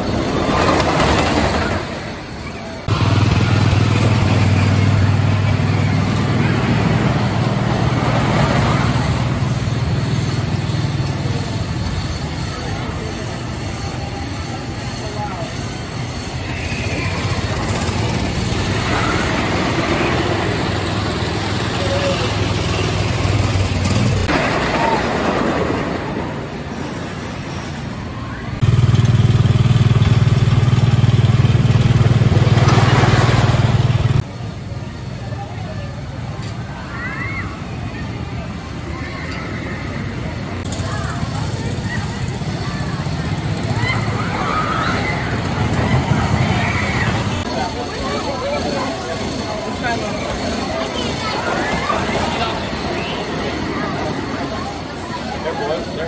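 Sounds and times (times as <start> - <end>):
riders' voices: 0.0 - 26.2, 30.8 - 56.0
roller coaster rumbling on track: 0.0 - 56.0.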